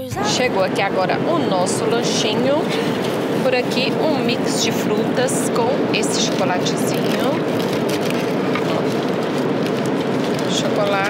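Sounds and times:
jet cabin engine and airflow rush: 0.0s - 11.0s.

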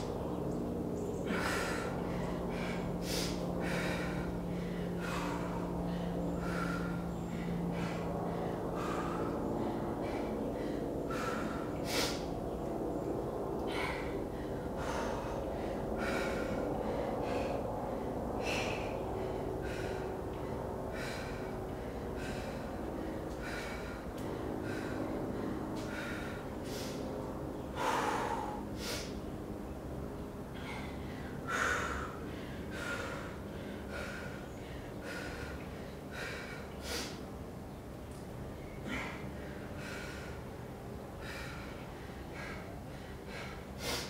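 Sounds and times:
woman breathing hard: 0.0s - 44.0s.

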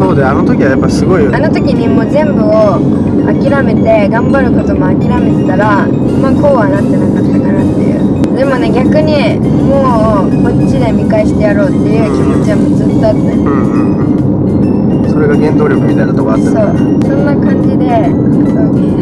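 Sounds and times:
background music: 0.0s - 19.0s
people conversing: 0.0s - 19.0s
road and engine hum: 0.0s - 19.0s.

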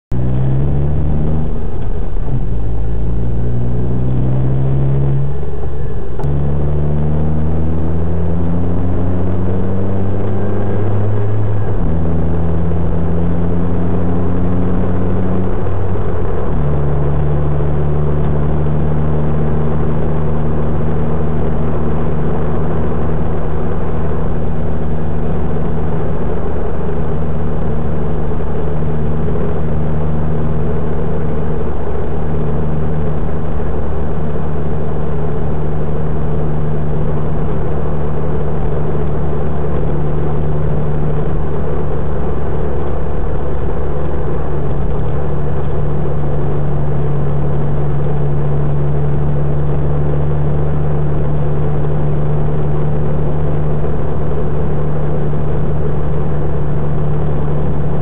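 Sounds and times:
car engine accelerating through gears: 0.0s - 58.0s
road and wind noise: 0.0s - 58.0s.

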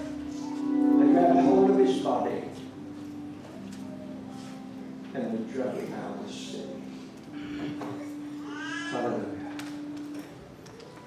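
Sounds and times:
sustained keyboard note: 0.0s - 4.8s.

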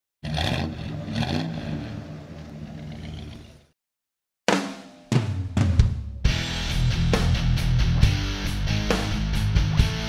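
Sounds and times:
car engine revving: 0.2s - 3.7s.

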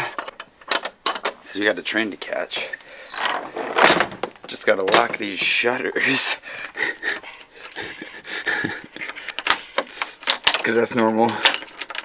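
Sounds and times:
keys jangling on keyring: 7.6s - 12.0s.

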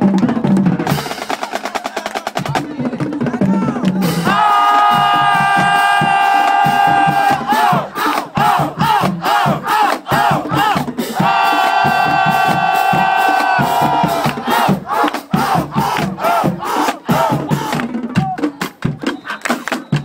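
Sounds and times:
drumline playing a cadence: 3.8s - 20.0s.

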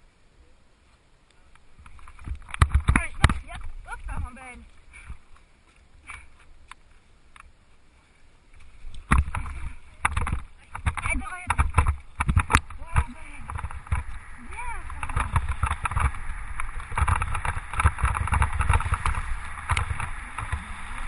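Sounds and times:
wheels rattling over gravel: 9.0s - 21.0s
wind buffeting microphone: 9.0s - 21.0s.

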